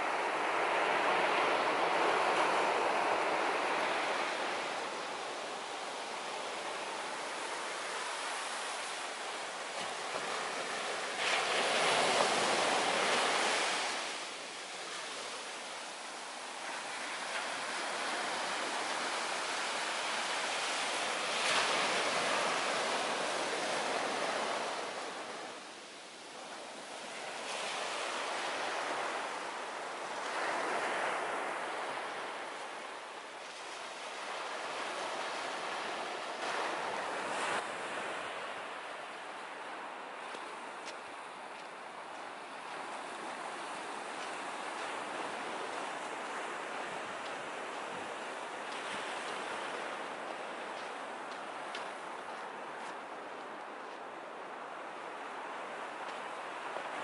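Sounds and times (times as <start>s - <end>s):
ocean surf breaking on sand: 0.0s - 57.0s.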